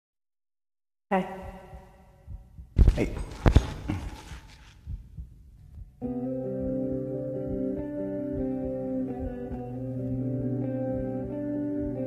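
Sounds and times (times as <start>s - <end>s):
echo of spoken word: 1.1s - 2.0s, 2.8s - 4.2s
faint low thuds: 1.4s - 9.9s.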